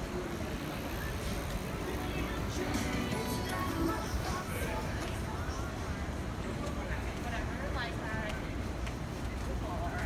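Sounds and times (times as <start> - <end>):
car traffic rumble: 0.0 - 10.0
faint voices: 0.0 - 10.0.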